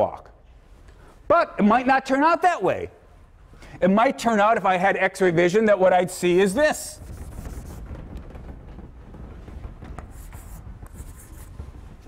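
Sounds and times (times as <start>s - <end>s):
low room hum: 0.0s - 12.0s
chalk strokes on blackboard: 7.0s - 7.9s, 10.0s - 12.0s.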